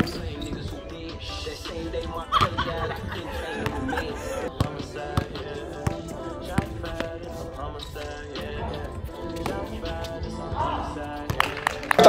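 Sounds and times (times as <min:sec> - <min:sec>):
background music with vocals: 0:00.0 - 0:12.0
basketball bouncing on court: 0:04.5 - 0:07.1, 0:11.3 - 0:11.6.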